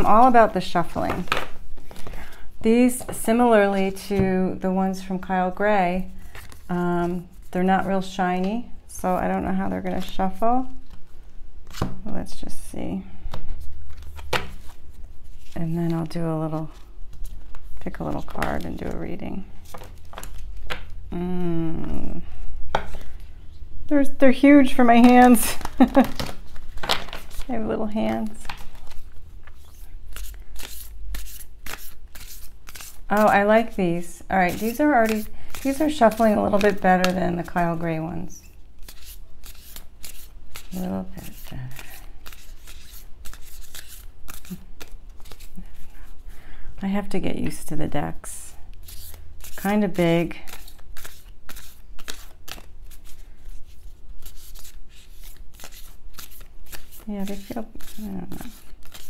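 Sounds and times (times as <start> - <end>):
cards being shuffled by hand: 0.9 - 3.1, 6.2 - 7.5, 13.3 - 21.0, 24.8 - 33.8, 34.4 - 37.8, 38.8 - 46.3, 48.7 - 59.0.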